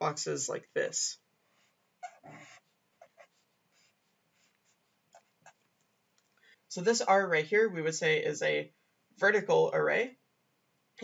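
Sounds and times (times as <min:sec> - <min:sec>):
marker scratching on paper: 0:01.5 - 0:05.6.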